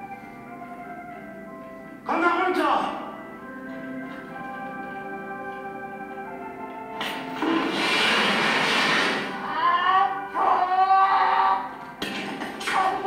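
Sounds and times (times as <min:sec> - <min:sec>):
loud rushing noise: 0:07.2 - 0:09.5.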